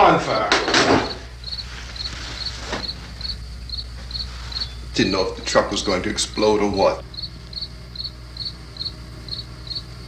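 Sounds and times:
cricket chirping: 0.0s - 10.0s
low steady hum: 0.0s - 10.0s.

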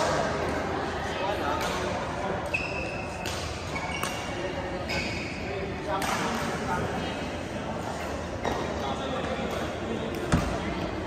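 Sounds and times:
badminton play echoing: 0.0s - 11.0s.

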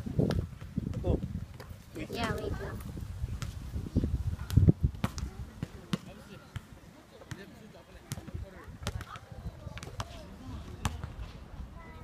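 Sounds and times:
basketball bouncing on hard court: 5.0s - 6.1s
faint voices: 5.1s - 12.0s.

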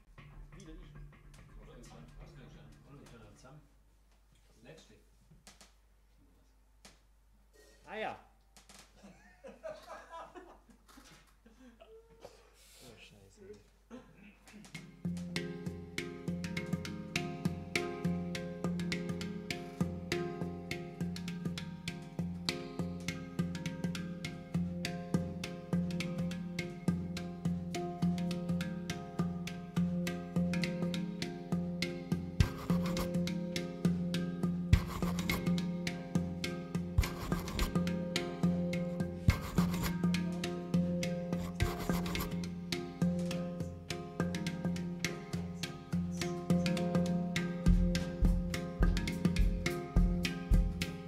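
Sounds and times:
plucked double bass: 0.0s - 3.4s, 23.8s - 51.0s
handpan ringing notes: 14.9s - 51.0s.

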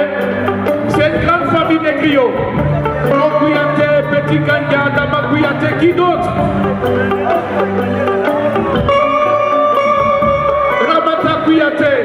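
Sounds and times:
bass line: 0.0s - 12.0s
electric guitar held notes: 5.7s - 10.9s.

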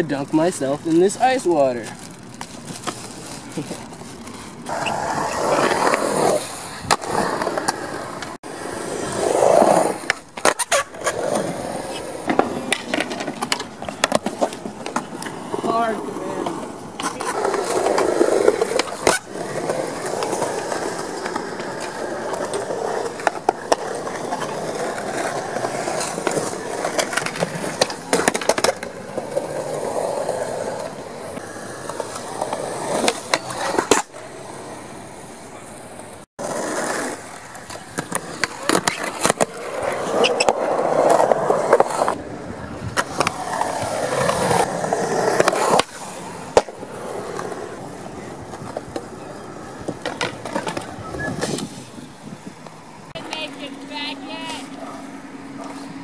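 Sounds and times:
skateboard wheels rolling on concrete: 0.0s - 56.0s
skateboard popping and landing: 2.1s - 34.8s, 35.6s - 53.6s.

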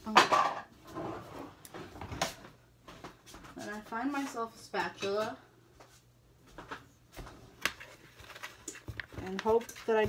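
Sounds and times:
knocks and clatters in a kitchen: 0.0s - 10.0s.

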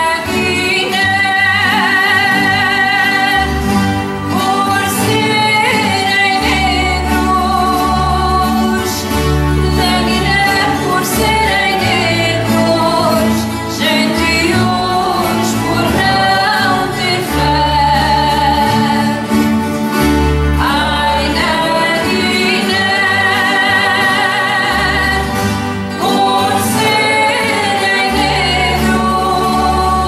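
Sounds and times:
woman singing with vibrato: 0.0s - 19.6s, 20.6s - 30.0s
strummed steel-string guitars: 0.0s - 30.0s
low bass line: 6.4s - 30.0s.

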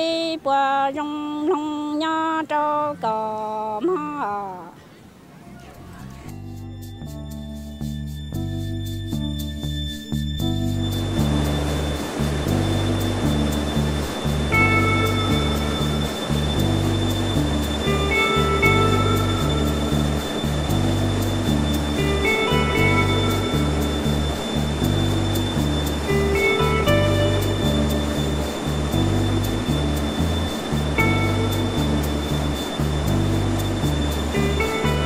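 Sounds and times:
background music with bass: 5.5s - 35.0s.

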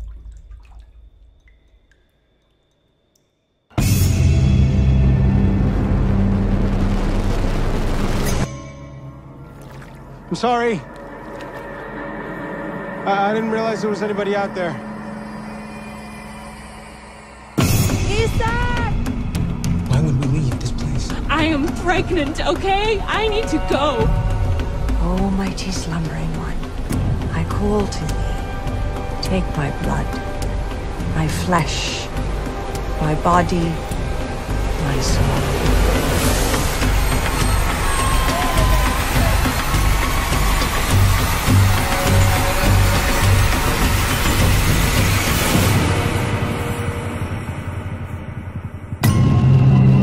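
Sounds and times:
horror score drone: 3.8s - 50.0s.

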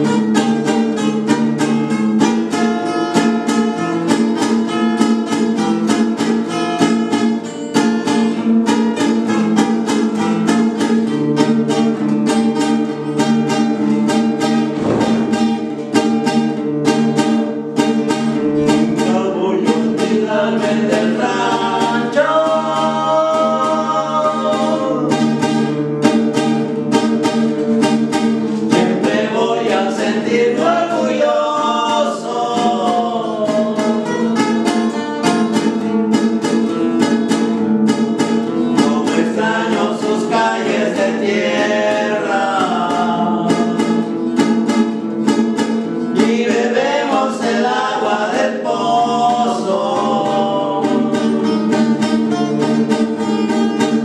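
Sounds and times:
acoustic guitars strumming: 0.0s - 54.0s
men singing together: 18.9s - 25.3s, 28.6s - 34.6s, 38.7s - 44.2s, 46.1s - 52.0s.

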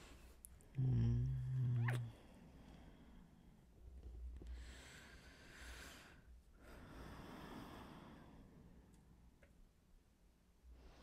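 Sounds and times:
man humming: 0.8s - 2.1s.

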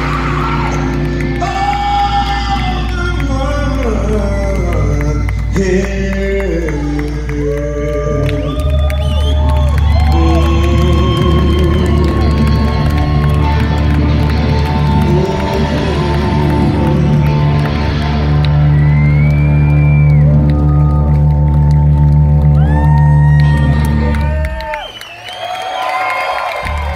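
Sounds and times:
crowd cheering: 0.0s - 26.9s
sliding guitar notes: 9.4s - 24.2s.

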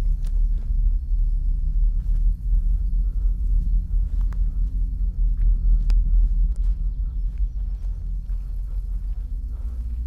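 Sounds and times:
deep low rumble: 0.0s - 10.0s.

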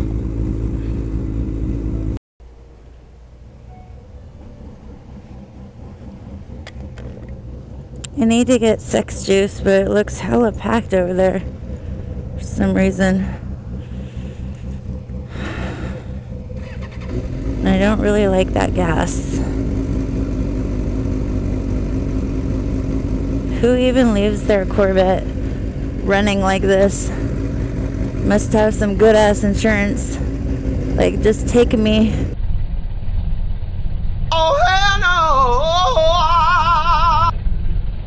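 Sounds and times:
motorcycle engine rumbling: 0.0s - 38.0s
breathy exhale: 13.4s - 16.4s.

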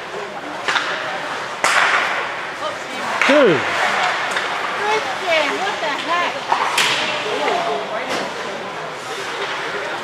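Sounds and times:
sharp crack of stick or puck: 0.6s - 2.5s, 6.5s - 7.2s.

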